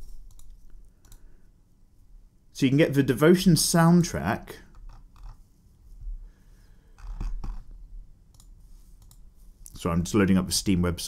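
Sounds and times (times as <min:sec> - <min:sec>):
computer mouse clicking: 0:00.2 - 0:01.3, 0:04.7 - 0:05.4, 0:07.0 - 0:07.7, 0:08.3 - 0:09.3.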